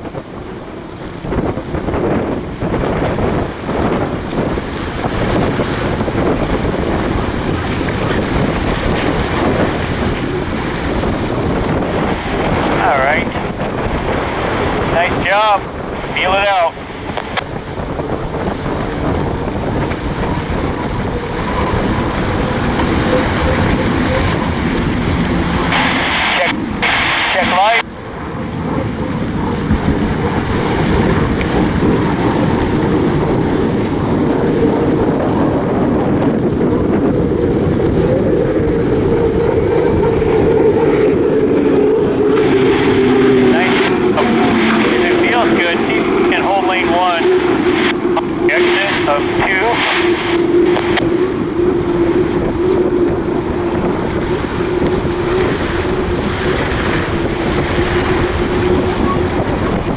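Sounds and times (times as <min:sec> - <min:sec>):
turbine engine rumble and whine: 0:00.0 - 0:59.9.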